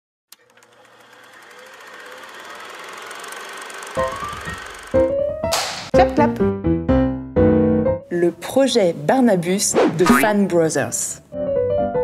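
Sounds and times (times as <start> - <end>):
rising keyboard-like notes: 3.7 - 8.1.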